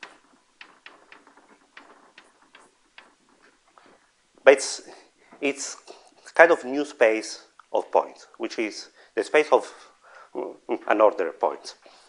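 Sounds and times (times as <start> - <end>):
chalk tapping on board: 0.0 - 3.4.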